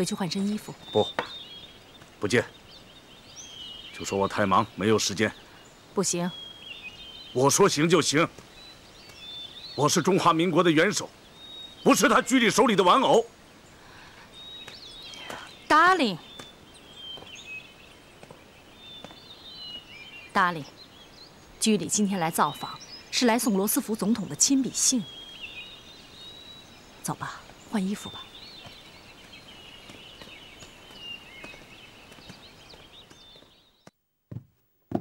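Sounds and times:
woman speaking: 0.0 - 0.8, 6.0 - 6.4, 15.2 - 16.2, 20.4 - 20.7, 21.6 - 25.1, 27.1 - 28.3
birds chirping faintly: 0.0 - 35.0
quiet outdoor ambience: 0.0 - 35.0.

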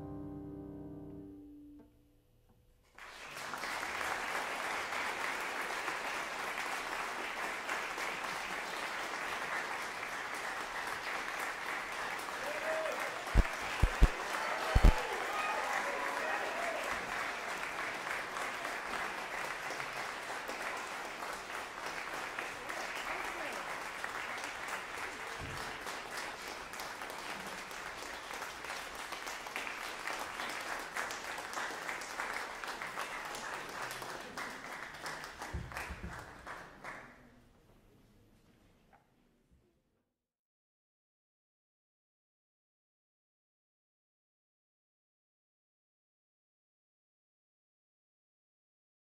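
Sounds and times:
audience applauding: 3.0 - 37.3
loud thumps: 13.4 - 14.2, 14.8 - 15.0.

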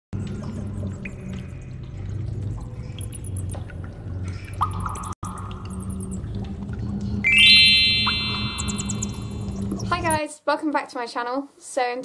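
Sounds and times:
synthesized chord sweeping up: 7.2 - 9.6.

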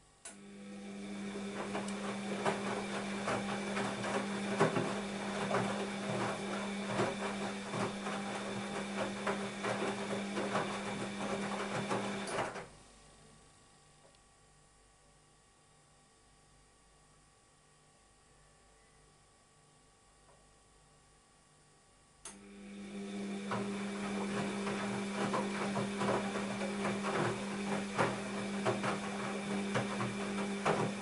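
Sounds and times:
washing machine motor humming: 0.2 - 12.8, 22.3 - 31.0
laundry tumbling and sloshing: 1.0 - 12.6, 23.0 - 31.0.

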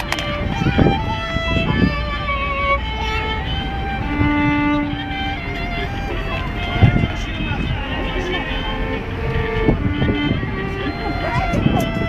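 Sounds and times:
people talking: 0.0 - 12.0
violin notes: 0.0 - 12.0.

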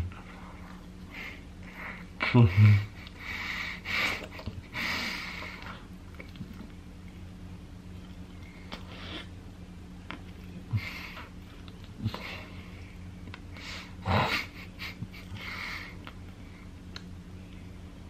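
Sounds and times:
heavy snorting breaths: 0.0 - 5.9, 10.7 - 11.4
person's muffled laugh: 1.2 - 3.1, 14.0 - 16.0.

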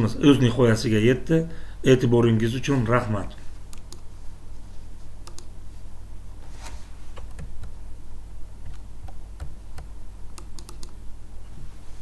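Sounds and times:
steady low hum: 0.0 - 12.0
mouse and keyboard clicks: 8.7 - 11.0.

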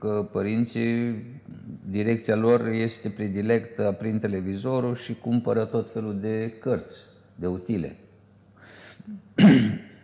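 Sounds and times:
person breathing in: 8.6 - 9.2
person clearing throat: 9.1 - 10.0.

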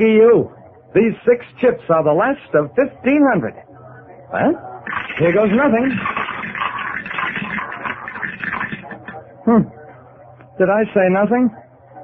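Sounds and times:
roulette wheel spinning: 4.8 - 9.2.

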